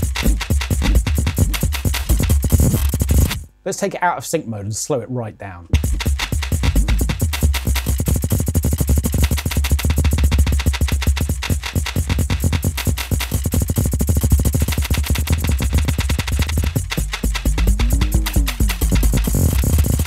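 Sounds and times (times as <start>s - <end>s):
heavy low bass: 15.2s - 20.0s.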